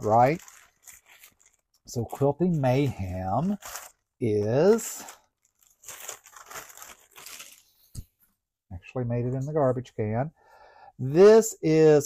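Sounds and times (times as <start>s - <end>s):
plastic mailer crinkling: 0.0s - 7.9s.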